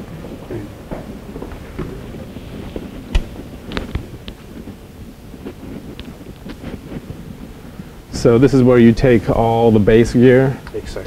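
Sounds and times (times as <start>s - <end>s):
footsteps: 0.0s - 8.6s
low room noise: 0.0s - 11.0s.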